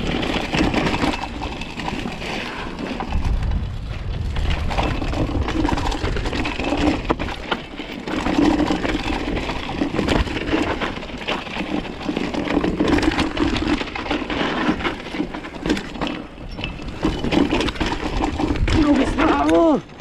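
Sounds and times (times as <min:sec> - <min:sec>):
bike rattling: 0:00.0 - 0:20.0
wind rumble on microphone: 0:02.7 - 0:07.6, 0:16.4 - 0:19.9.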